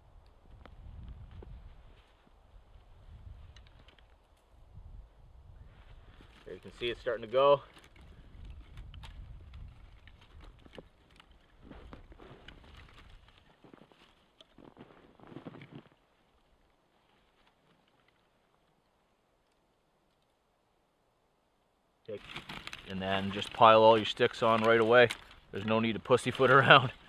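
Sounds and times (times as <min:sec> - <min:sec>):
wind buffeting microphone: 0:00.0 - 0:02.0, 0:02.6 - 0:03.8, 0:04.6 - 0:07.1, 0:08.0 - 0:10.8
dry twigs crackling: 0:00.3 - 0:04.6, 0:05.7 - 0:20.4, 0:22.1 - 0:27.0.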